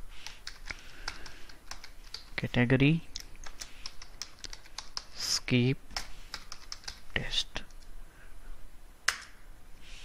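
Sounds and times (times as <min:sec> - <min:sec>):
keyboard keys clicking: 0:00.2 - 0:02.4, 0:03.1 - 0:05.1, 0:06.0 - 0:07.0.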